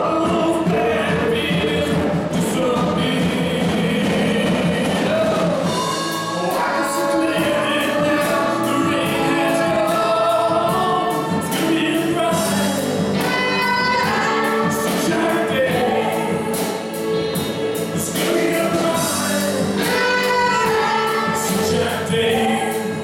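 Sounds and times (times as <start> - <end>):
backing singers: 0.0 - 23.0
full band playing: 0.0 - 23.0
man singing gospel: 0.0 - 23.0.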